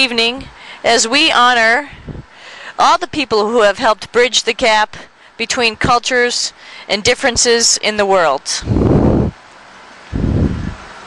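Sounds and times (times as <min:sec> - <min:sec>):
background hiss: 0:00.0 - 0:11.0
muffled puffs on microphone: 0:01.9 - 0:02.4, 0:08.6 - 0:09.4, 0:10.1 - 0:11.0.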